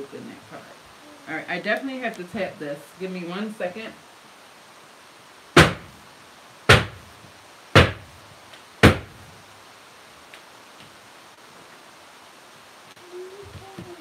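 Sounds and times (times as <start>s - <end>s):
wooden mold banged down: 5.6s - 5.9s, 6.7s - 7.0s, 7.8s - 8.1s, 8.8s - 9.2s.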